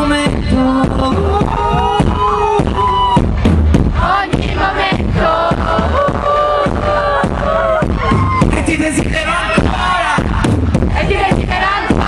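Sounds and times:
live pop band: 0.0 - 12.0
steady drum beat: 0.0 - 12.0.

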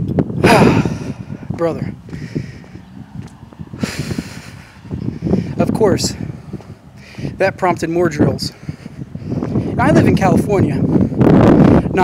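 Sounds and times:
man sighing heavily: 0.4 - 1.5
man talking: 1.5 - 2.0, 5.5 - 6.3, 7.2 - 8.6, 9.8 - 10.9.

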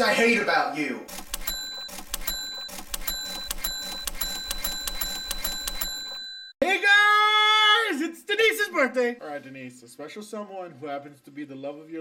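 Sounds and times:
sharp clicks: 1.1 - 6.2
electronic bell-like dings: 1.3 - 6.6.

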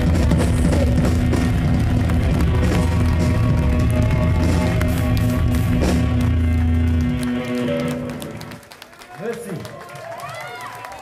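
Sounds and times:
audience shouting and whooping: 1.1 - 6.7, 9.0 - 11.0.

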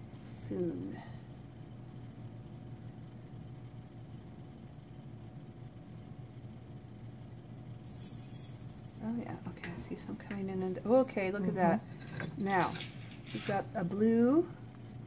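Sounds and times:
gas torch flame rumble: 9.0 - 15.0.

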